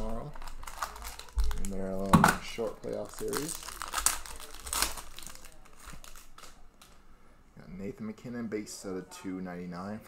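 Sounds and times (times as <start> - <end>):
cards rustling and ticking: 0.0 - 7.0
plastic wrapper crinkling: 0.0 - 7.0.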